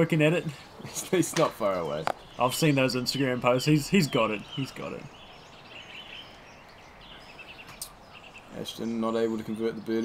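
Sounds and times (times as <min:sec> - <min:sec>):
faint bird calls: 0:00.4 - 0:10.0.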